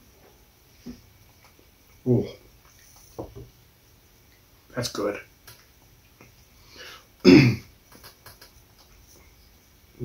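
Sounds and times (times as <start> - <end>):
man clearing throat: 7.2 - 7.7
faint clicks: 7.9 - 9.0.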